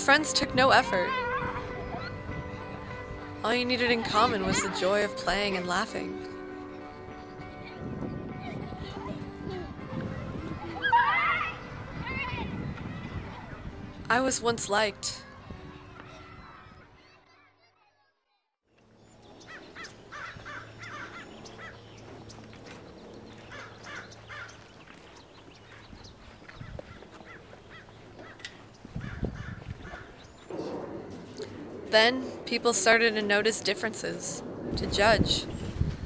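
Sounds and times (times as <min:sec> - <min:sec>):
girls laughing and squealing: 0:00.8 - 0:02.8, 0:03.8 - 0:05.6, 0:07.3 - 0:12.5
bird calling: 0:19.2 - 0:30.8
low thumps: 0:30.5 - 0:36.0.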